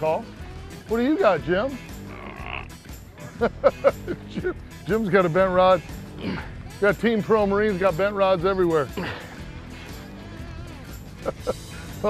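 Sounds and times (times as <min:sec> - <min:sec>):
person making loud voiced sounds: 0:02.0 - 0:02.8.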